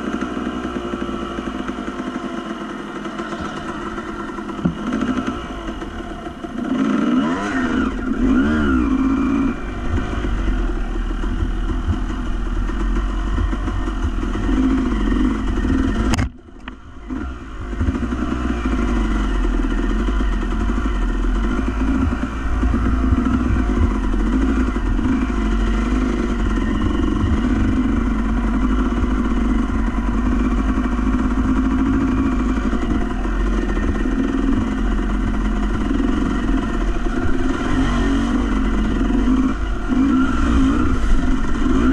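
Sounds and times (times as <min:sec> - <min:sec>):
motorcycle engine revving: 0:00.0 - 0:41.9.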